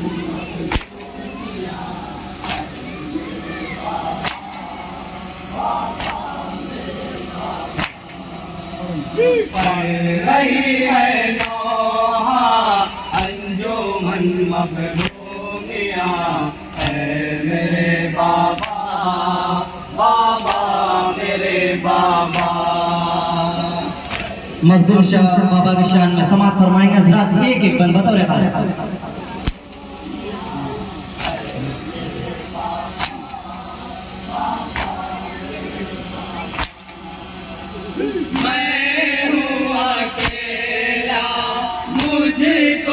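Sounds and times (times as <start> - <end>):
crowd murmuring: 0.0 - 42.9
men chanting a mourning lament: 0.0 - 42.9
crowd slapping chests: 0.1 - 1.2, 1.8 - 8.3, 9.5 - 10.0, 11.3 - 11.7, 13.2 - 13.5, 14.9 - 15.4, 16.7 - 17.3, 18.2 - 19.2, 20.0 - 23.3, 23.9 - 24.6, 28.8 - 37.5, 38.1 - 38.8, 40.1 - 40.6, 41.9 - 42.4.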